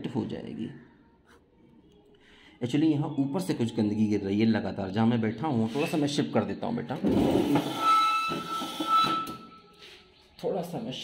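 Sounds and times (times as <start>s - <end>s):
high-pitched whistle-like tone: 7.7s - 9.8s.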